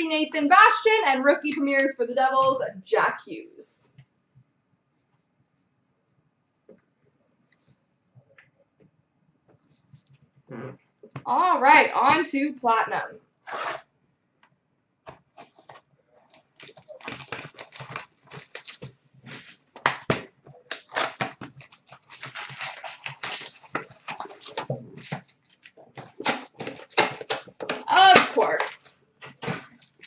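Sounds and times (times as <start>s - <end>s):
cardboard and wrappers crinkling: 15.3s - 30.0s.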